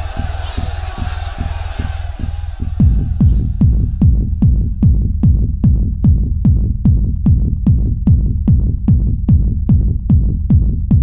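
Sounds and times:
kick drum beat: 0:00.0 - 0:11.0.

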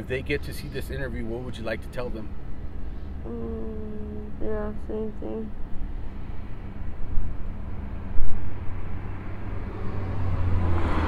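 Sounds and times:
car passing on road: 0:05.6 - 0:11.0.

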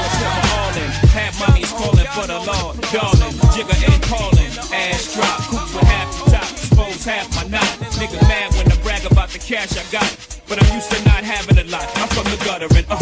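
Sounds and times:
rapping over a beat: 0:00.0 - 0:13.0.

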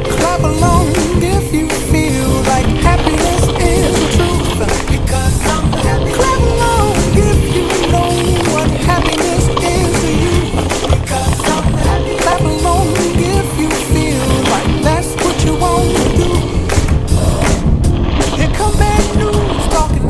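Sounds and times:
background music: 0:00.0 - 0:20.0
tyres rumbling on dirt and gravel: 0:00.0 - 0:20.0.

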